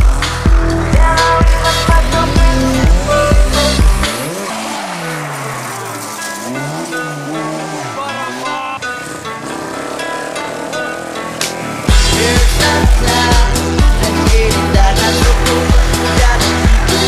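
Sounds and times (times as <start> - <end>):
rally car engine revving: 0.0 - 17.0.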